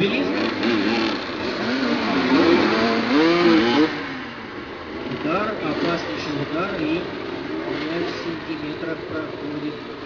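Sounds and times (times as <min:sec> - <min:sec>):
motorcycles revving: 0:00.0 - 0:10.0.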